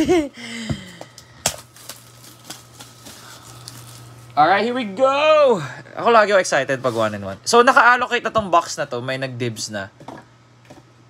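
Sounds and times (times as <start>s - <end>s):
plastic crinkling: 1.4s - 4.4s
plastic wrap tearing: 1.4s - 4.4s.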